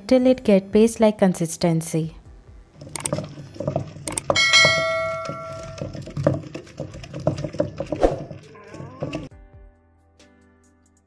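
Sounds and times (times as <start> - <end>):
pestle pounding in stone mortar: 3.0 - 9.3
bell-like ringing tone: 4.3 - 5.9.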